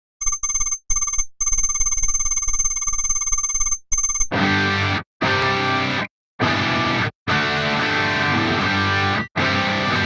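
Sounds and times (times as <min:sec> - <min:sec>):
electronic ringing tone: 0:00.2 - 0:04.3.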